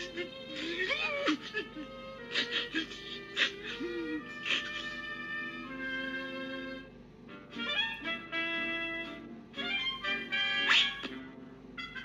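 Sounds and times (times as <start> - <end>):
animal-like cries: 0.0 - 5.7, 9.6 - 11.2
cartoon orchestral music: 0.0 - 12.0.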